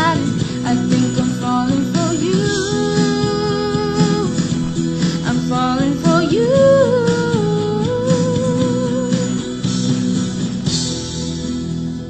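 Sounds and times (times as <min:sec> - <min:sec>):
guitar chords: 0:00.0 - 0:12.0.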